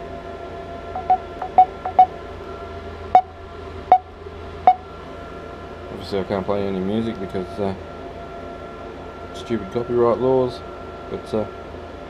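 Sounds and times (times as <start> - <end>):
steady background hum: 0.0 - 12.0
phone beeps: 1.0 - 2.1.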